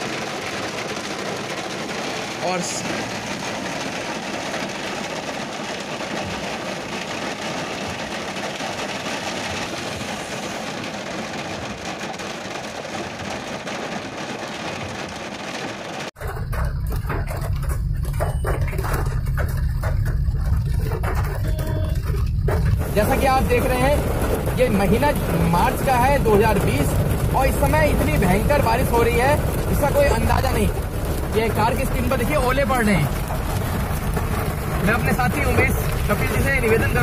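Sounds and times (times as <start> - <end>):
car driving on wet road: 0.0 - 37.0
heavy rain on a car: 0.0 - 37.0.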